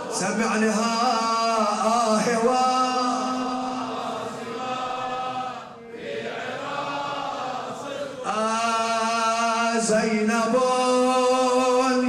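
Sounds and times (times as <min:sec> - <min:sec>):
man chanting a lament: 0:00.0 - 0:05.7, 0:06.3 - 0:12.0.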